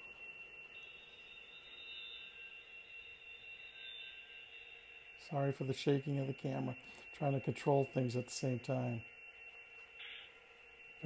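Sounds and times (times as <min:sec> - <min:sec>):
model train whine and hum: 0:00.0 - 0:11.0.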